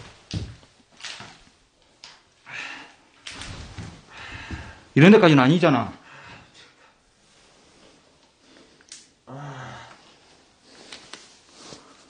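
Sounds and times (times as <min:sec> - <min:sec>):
man groaning: 0:09.3 - 0:10.0.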